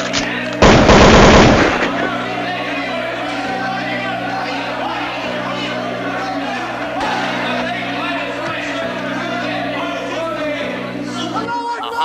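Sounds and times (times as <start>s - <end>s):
music bed: 0.0s - 12.0s
automatic gunfire burst: 0.6s - 2.1s.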